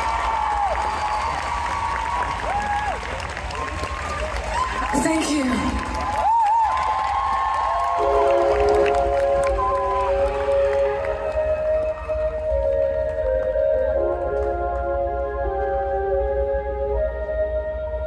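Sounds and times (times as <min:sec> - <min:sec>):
crowd cheering: 0:00.0 - 0:13.6
sustained chords over loudspeakers: 0:08.0 - 0:18.0.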